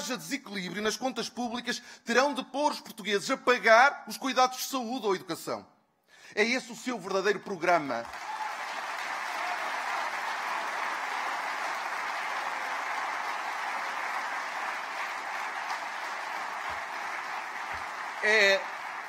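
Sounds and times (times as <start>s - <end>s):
audience applauding: 8.0s - 19.0s.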